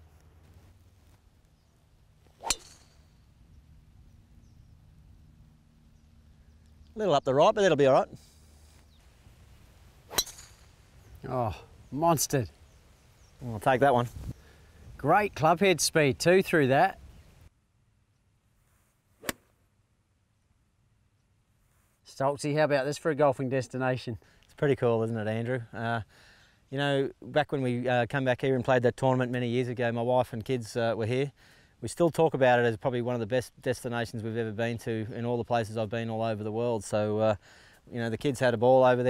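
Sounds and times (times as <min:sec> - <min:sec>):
golf club striking ball: 0:02.4 - 0:03.2, 0:10.1 - 0:10.8.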